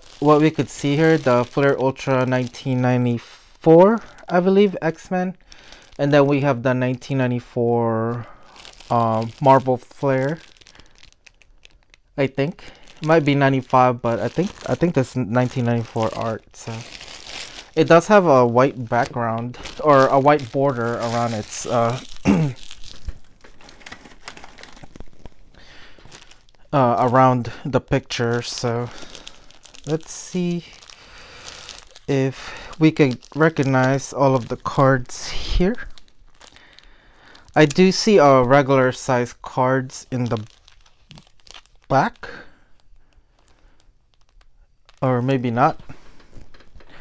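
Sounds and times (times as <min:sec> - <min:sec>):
plastic-wrapped cards clicking and rustling: 0:00.0 - 0:02.8, 0:05.4 - 0:27.2, 0:27.9 - 0:38.1, 0:39.8 - 0:47.0.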